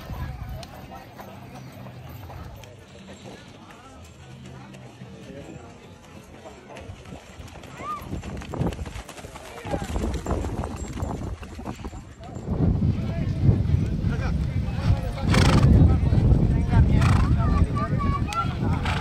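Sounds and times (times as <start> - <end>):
horse hooves on dirt: 0.0 - 17.3.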